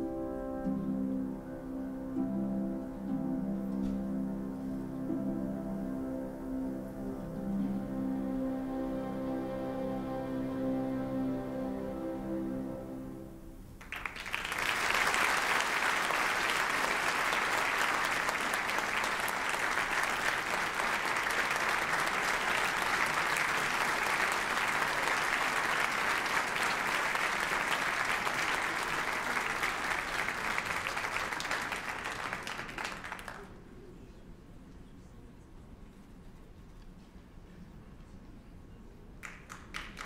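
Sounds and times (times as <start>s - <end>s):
large audience applauding: 13.8s - 33.6s, 39.2s - 40.0s.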